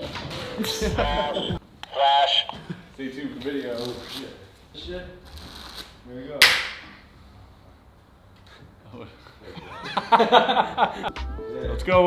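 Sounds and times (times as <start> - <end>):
sharp crack: 6.4 - 7.0.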